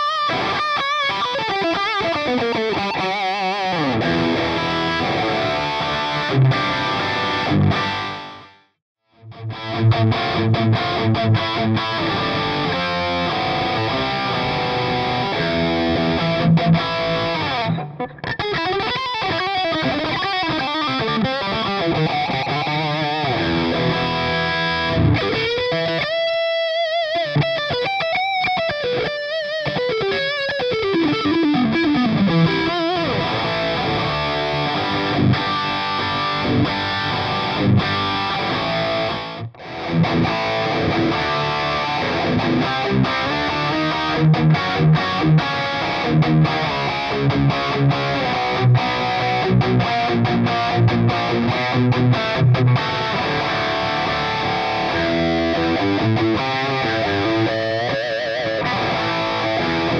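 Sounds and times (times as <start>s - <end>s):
distorted electric guitar: 0.0s - 59.9s.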